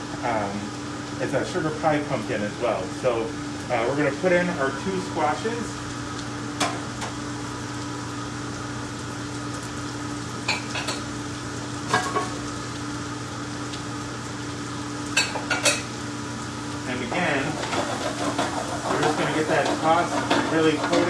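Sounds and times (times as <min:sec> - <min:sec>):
vegetables sizzling in a pan: 0:00.0 - 0:21.0
utensils clinking and scraping pan: 0:17.1 - 0:21.0.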